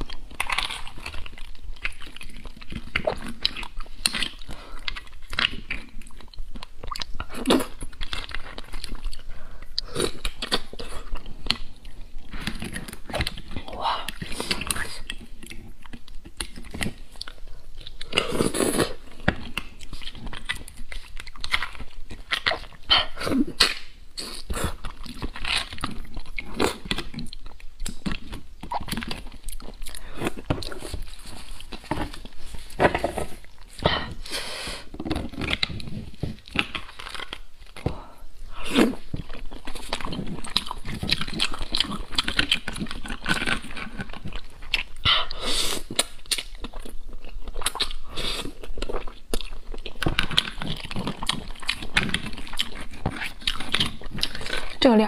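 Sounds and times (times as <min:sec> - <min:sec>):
wet chewing and mouth sounds: 0:00.0 - 0:55.0.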